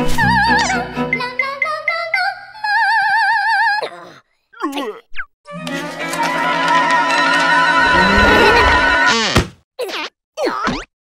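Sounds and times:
cartoon music: 7.8 - 9.3.

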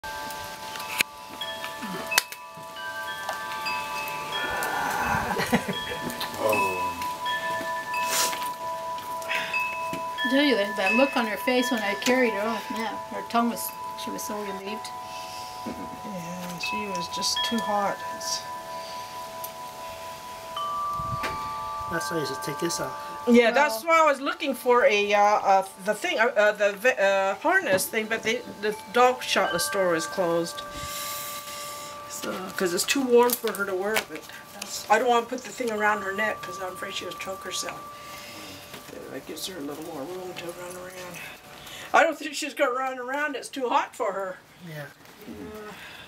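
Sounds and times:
chimes ringing: 0.0 - 43.2.

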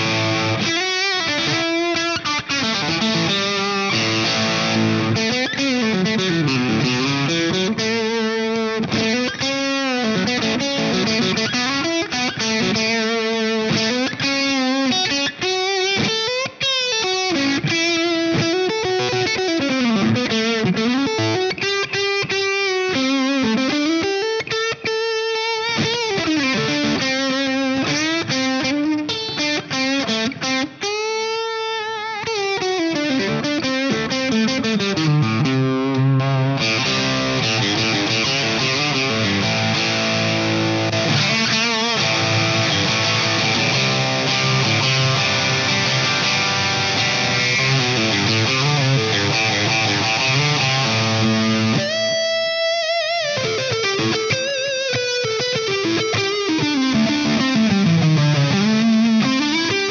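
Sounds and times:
overdriven electric guitar lead: 0.0 - 59.9.

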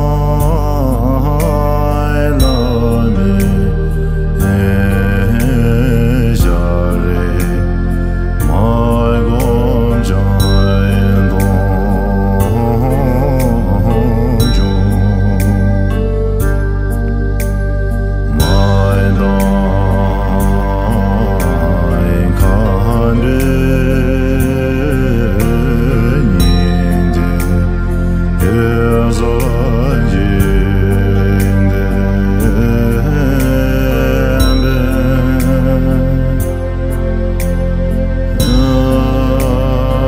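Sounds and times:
person singing slow prayer song: 0.0 - 40.0
steady low drone: 0.0 - 40.0.

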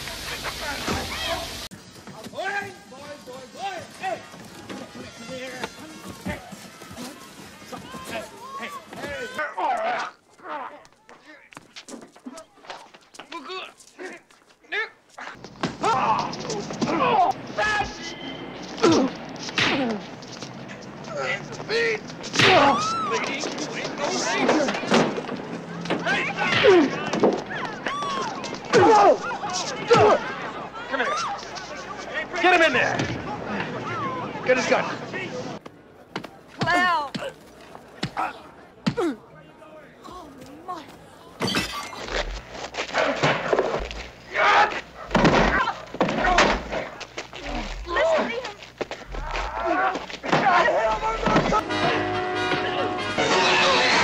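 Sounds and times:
traffic rumble: 0.0 - 51.6
loud yelling voices: 2.3 - 11.5, 21.0 - 35.6, 42.0 - 54.0
sharp slap-like hits: 19.5 - 20.0
scuffle of thumps and crashes: 41.4 - 48.0
grunting voices: 41.7 - 48.4, 49.0 - 51.6
wavering voices: 49.0 - 51.6
person crying out: 49.1 - 49.8.

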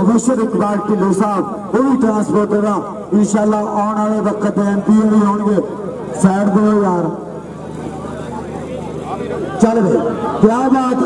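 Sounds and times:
spectators chattering: 0.0 - 11.0
steady low hum: 0.0 - 11.0.

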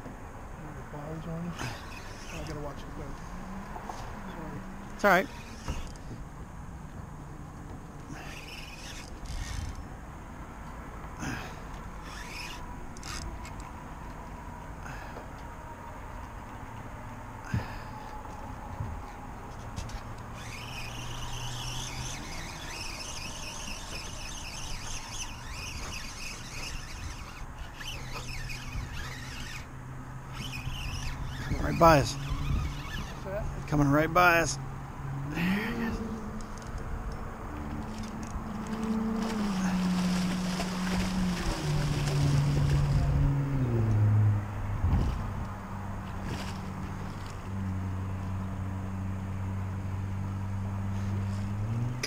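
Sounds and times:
outboard motor hum: 0.7 - 33.8, 34.7 - 51.8
fishing reel whirring: 1.1 - 6.2, 8.0 - 10.1, 11.2 - 14.2, 19.7 - 33.5, 35.3 - 44.0.

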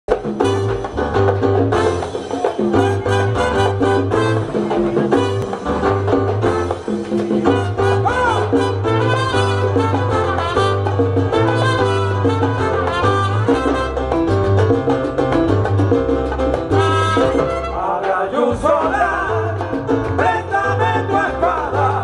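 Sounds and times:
live salsa band playing: 0.1 - 22.0.

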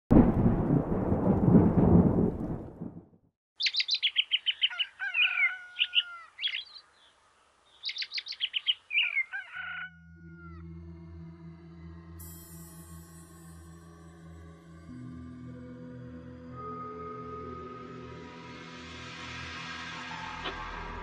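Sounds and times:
deep rumble: 0.1 - 3.2
birds singing trills and whistles: 3.6 - 10.6.

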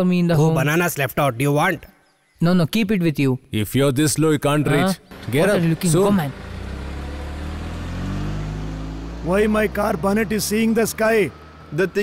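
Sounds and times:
car engine revving: 5.0 - 12.0.

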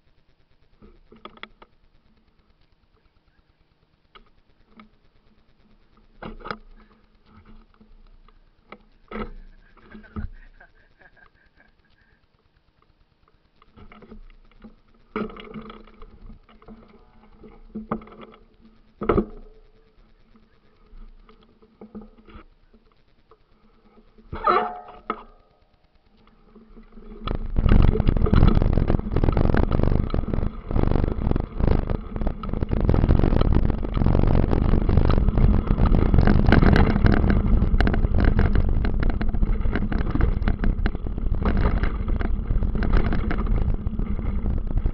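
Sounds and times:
grass rustling: 0.0 - 44.9
low wind rumble: 26.8 - 44.9
bike knocks and rattles: 31.9 - 44.9.

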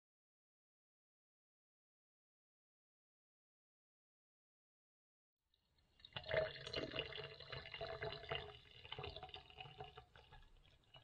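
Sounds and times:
water pouring into glass jar: 5.8 - 11.0.

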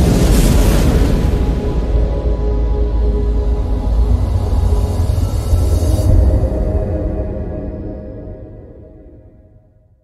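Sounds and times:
deep cinematic rumble: 0.0 - 8.6.

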